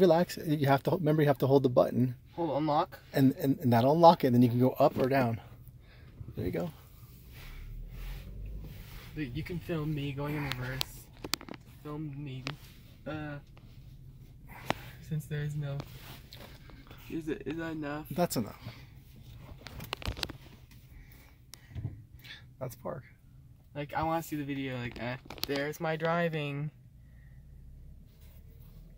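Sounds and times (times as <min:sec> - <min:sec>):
low car cabin rumble: 0:03.6 - 0:22.1.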